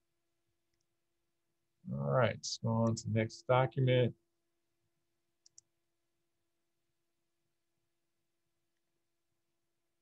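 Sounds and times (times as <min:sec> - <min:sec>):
person speaking: 0:01.9 - 0:04.2
computer mouse clicks: 0:05.4 - 0:05.7.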